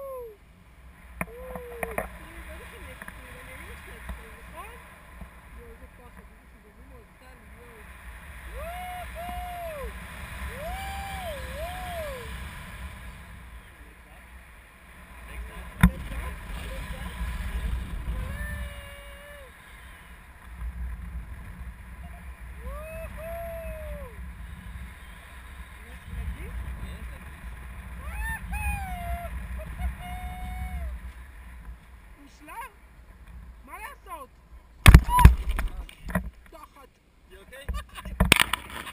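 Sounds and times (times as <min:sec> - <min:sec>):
wind buffeting microphone: 0:15.0 - 0:32.1.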